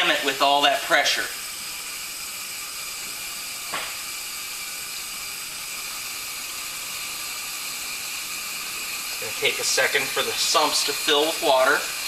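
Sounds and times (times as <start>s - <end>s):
water hissing through valve: 0.0s - 12.0s.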